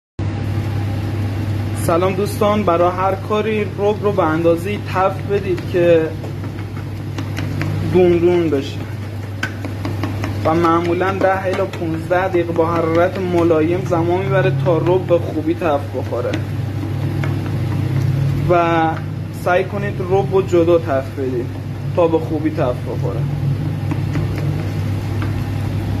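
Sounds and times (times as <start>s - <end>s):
low machine hum: 0.2s - 26.0s
tomato paste frying: 0.3s - 26.0s
man speaking: 1.8s - 6.2s, 7.8s - 9.0s, 10.4s - 16.4s, 18.4s - 23.3s.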